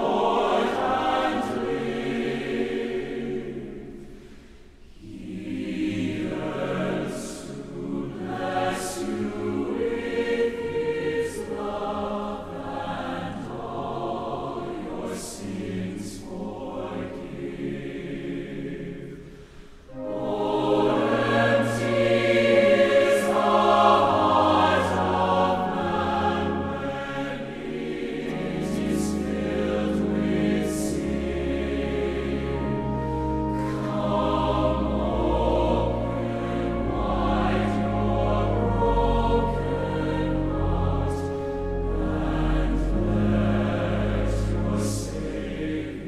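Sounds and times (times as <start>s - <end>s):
large choir singing: 0.0s - 46.0s.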